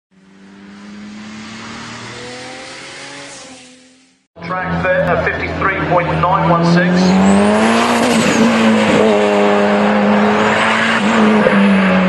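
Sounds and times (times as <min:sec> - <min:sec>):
race car engine: 0:00.1 - 0:12.0.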